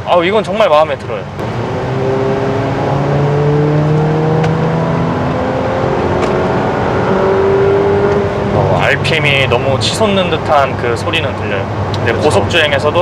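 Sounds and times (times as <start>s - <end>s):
car engine revving inside cabin: 1.4s - 10.4s.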